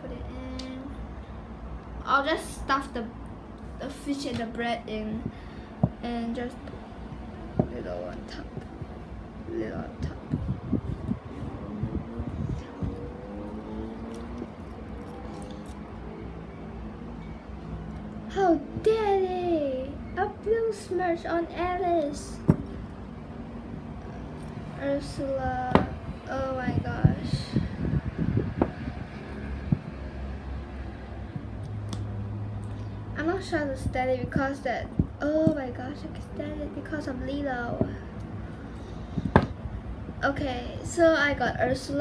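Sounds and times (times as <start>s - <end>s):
steady low hum: 0.0s - 42.0s
keyring clinking: 13.4s - 16.0s.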